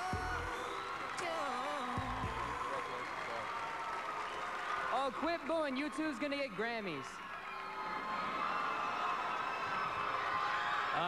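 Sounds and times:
large audience cheering: 0.0s - 11.0s.

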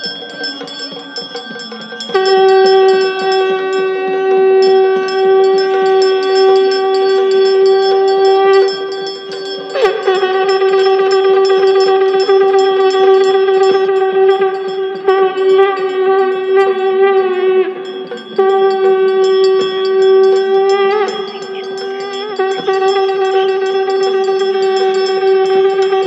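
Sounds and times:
conch shell blasts: 0.0s - 26.0s
temple bells ringing: 0.0s - 26.0s.

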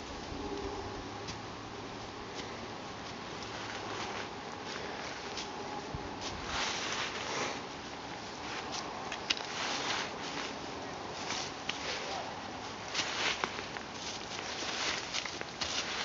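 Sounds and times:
footsteps in dry leaves: 0.0s - 16.0s.

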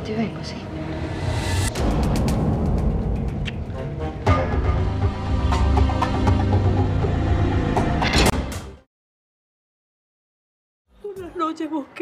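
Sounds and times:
dramatic background music: 0.0s - 8.9s.

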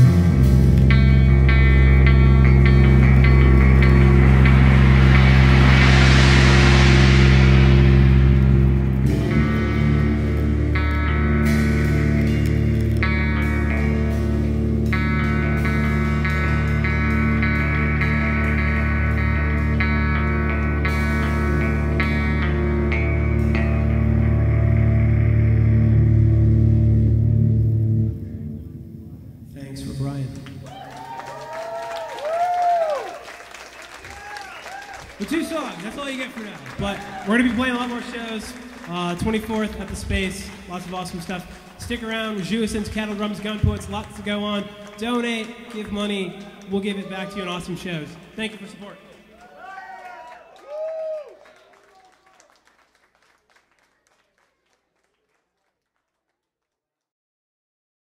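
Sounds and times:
live band with electric guitar: 0.0s - 29.4s, 30.4s - 47.2s
hissing swell: 2.4s - 10.7s.

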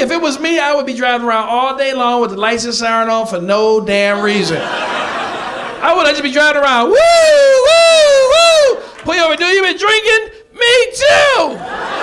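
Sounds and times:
man imitating a siren: 6.9s - 8.8s.

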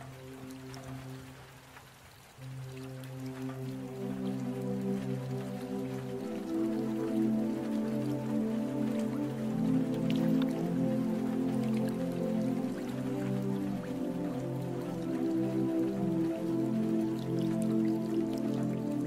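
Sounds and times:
raindrops pattering into water: 0.0s - 19.0s
slow ambient music: 0.0s - 19.0s.

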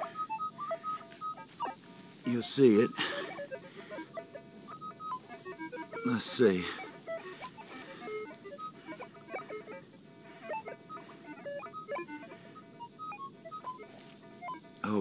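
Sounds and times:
metal detector beeping tones: 0.0s - 15.0s.

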